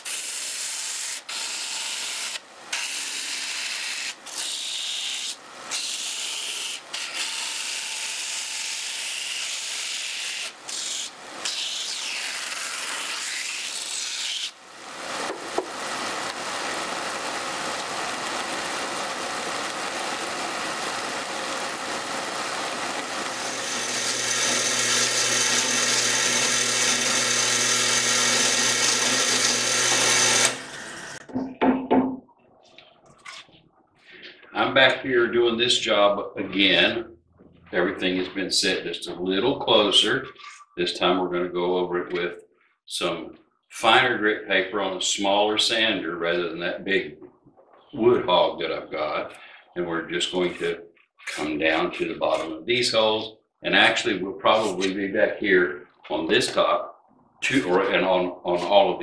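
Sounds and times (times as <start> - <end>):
drum sander grinding wood: 9.7 - 31.2
motor hum: 14.7 - 31.3.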